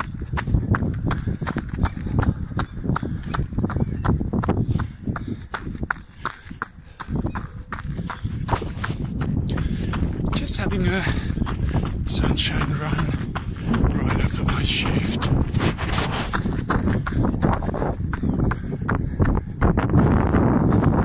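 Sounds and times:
running footsteps on asphalt: 0.0s - 21.0s
wind buffeting microphone: 0.0s - 21.0s.

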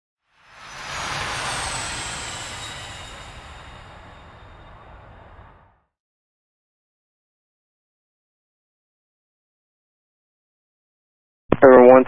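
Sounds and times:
faint falling high whine: 0.4s - 5.8s.

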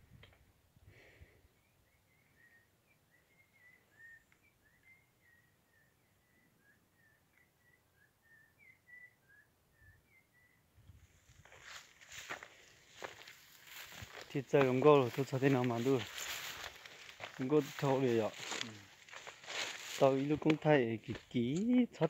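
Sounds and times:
small bird chirping: 1.6s - 10.6s
footsteps crunching through dry brush: 11.0s - 22.0s.

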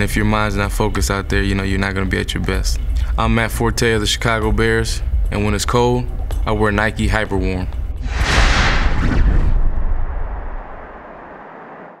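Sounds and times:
flame whoosh and rumble: 8.0s - 12.0s.

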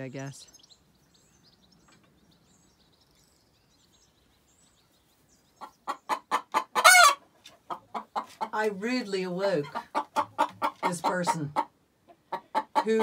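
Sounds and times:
hen clucking: 5.4s - 13.0s.

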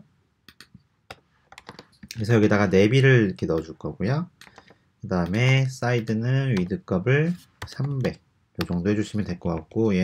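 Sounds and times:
computer keyboard typing: 0.5s - 2.1s, 4.4s - 6.8s, 7.6s - 8.9s.

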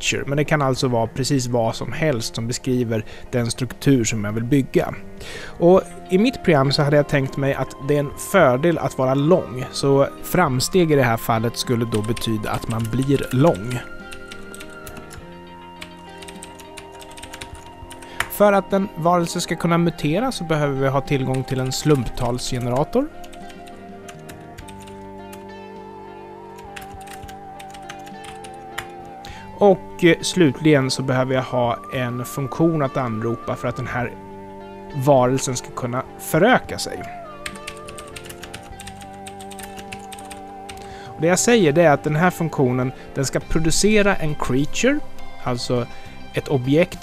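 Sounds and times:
soft background music: 0.0s - 47.0s
keyboard typing clicks: 15.8s - 18.3s.

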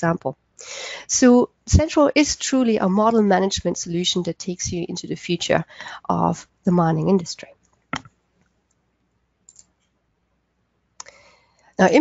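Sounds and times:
faint short clicks: 9.5s - 9.8s.

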